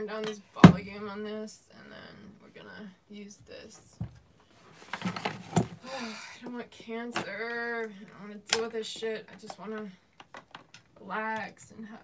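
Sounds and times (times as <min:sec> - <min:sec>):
equipment rustling and knocking: 0:03.9 - 0:05.8.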